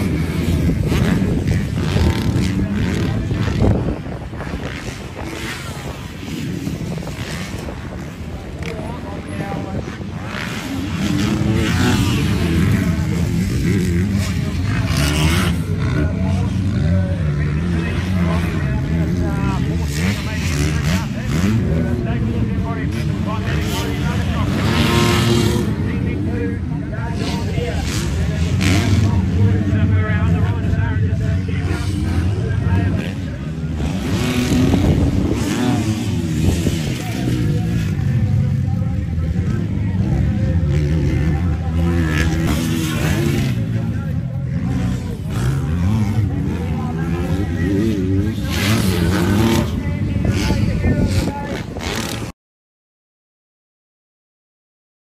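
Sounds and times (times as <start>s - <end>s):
motocross bike engines revving: 0.0s - 52.3s.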